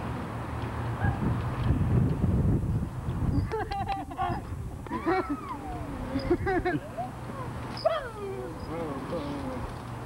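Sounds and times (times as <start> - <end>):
people making high sliding sounds: 3.4 - 8.4.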